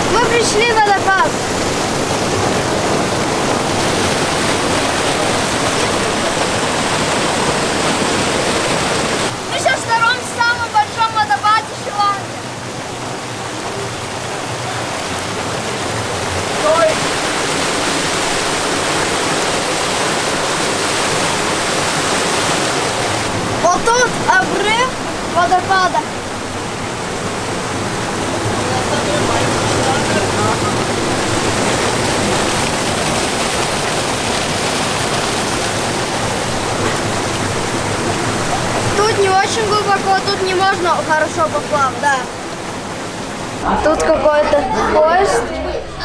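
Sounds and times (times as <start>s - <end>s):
small waterfall rushing over rock: 0.0s - 43.7s.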